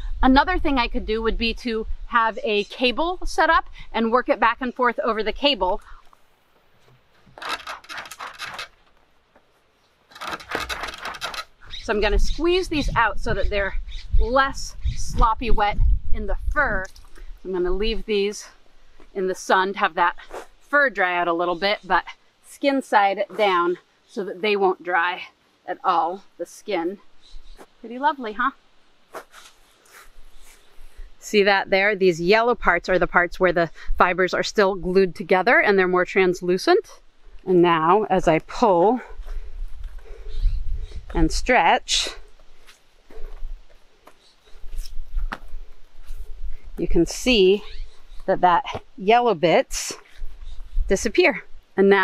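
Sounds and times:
hide rubbing over wire cable: 6.7 - 11.9.

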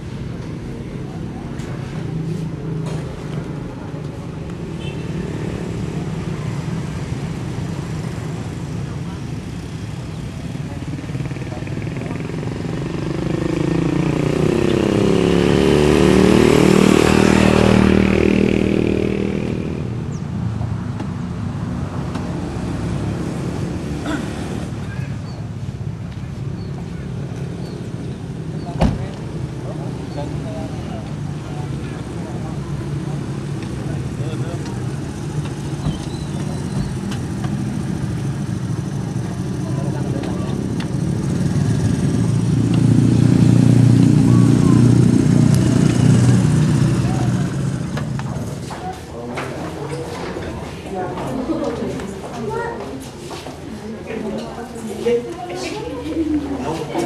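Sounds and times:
vehicle passing by: 10.7 - 25.0, 26.9 - 52.4.

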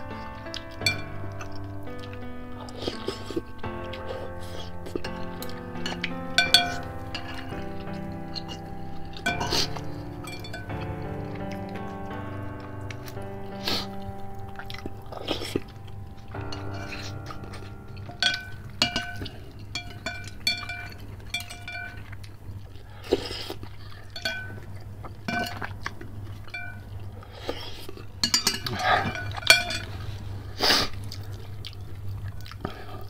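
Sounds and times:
background music: 0.0 - 22.0
chewing: 0.2 - 33.0
utensils clicking on glass bowl: 9.2 - 10.7, 19.8 - 22.0
slurping noodles and broth: 30.1 - 31.4.

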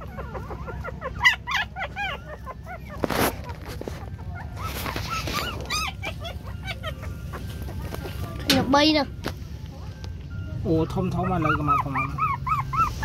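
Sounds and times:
puppies whimpering and squealing: 0.0 - 13.0
rustling: 2.0 - 8.5.

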